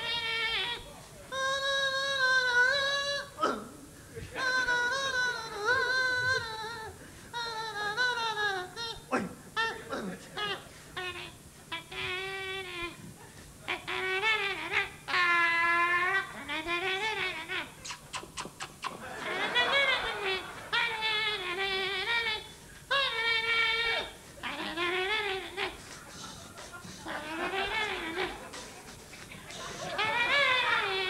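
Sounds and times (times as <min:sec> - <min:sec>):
man imitating instruments vocally: 0:00.0 - 0:31.0.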